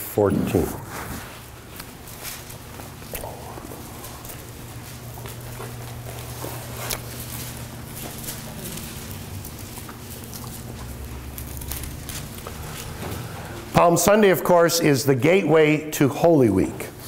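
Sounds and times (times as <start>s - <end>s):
low hum: 0.0s - 14.0s
light footsteps: 0.4s - 13.8s
robes rustling: 0.5s - 13.8s.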